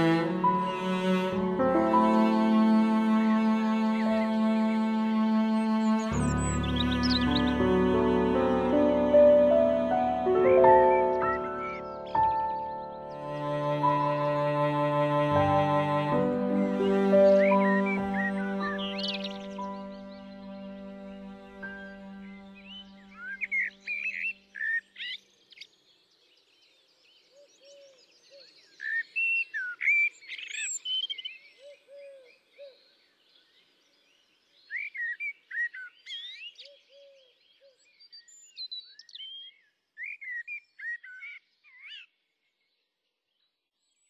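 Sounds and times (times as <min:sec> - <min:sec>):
held music chord: 0:00.0 - 0:23.2
songbirds chirping and singing: 0:00.0 - 0:44.0
softer lower bird calls: 0:34.6 - 0:42.2.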